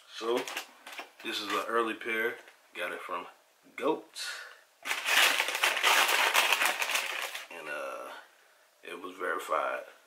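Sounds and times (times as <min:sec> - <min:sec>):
packaging crinkling: 0:00.2 - 0:01.7, 0:04.8 - 0:07.6.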